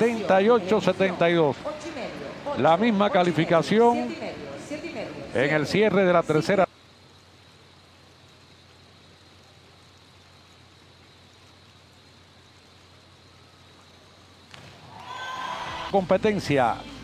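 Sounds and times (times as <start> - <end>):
faint steady indoor hiss: 0.0 - 17.0.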